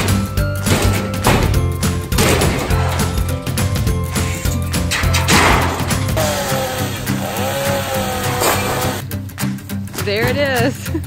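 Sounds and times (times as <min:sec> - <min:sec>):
background music: 0:00.0 - 0:11.0
crash: 0:04.9 - 0:06.2
chainsaw running: 0:05.7 - 0:09.0.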